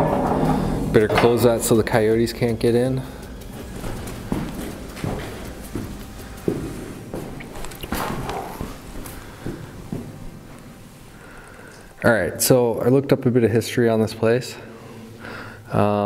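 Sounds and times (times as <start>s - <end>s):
footsteps on gritty stone floor: 3.3s - 10.8s.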